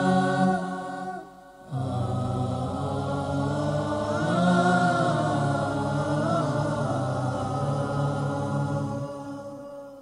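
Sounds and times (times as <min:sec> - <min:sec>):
devotional song held note: 0:00.0 - 0:10.0.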